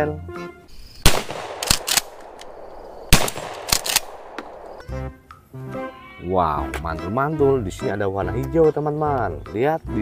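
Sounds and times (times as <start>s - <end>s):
shotgun shots: 1.0s - 4.9s
shotgun pump racking clacks: 1.5s - 2.6s, 3.2s - 4.7s.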